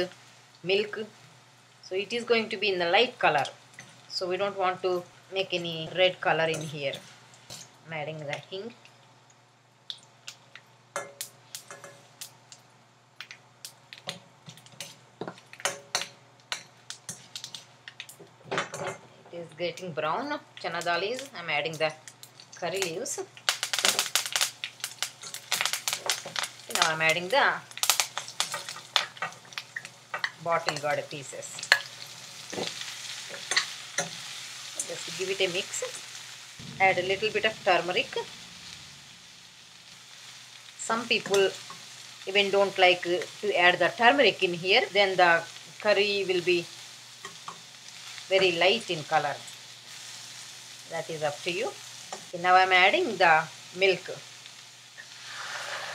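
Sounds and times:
vegetables sizzling in oil: 0.0 - 55.9
metal spoon clinking on pan: 11.0 - 12.0, 14.8 - 17.2
metal spatula scraping a pan: 55.0 - 55.9.

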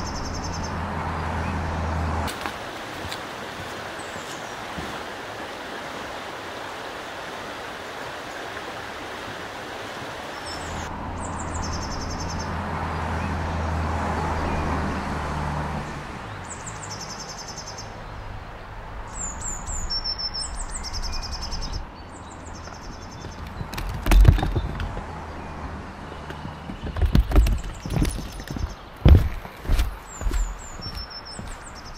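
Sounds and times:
small birds chirping: 0.0 - 2.3, 3.8 - 4.8, 10.1 - 31.9
outdoor background rush: 0.0 - 31.9.

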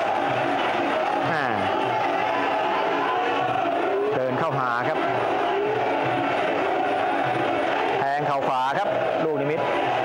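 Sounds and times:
stadium crowd voices: 0.0 - 10.0.

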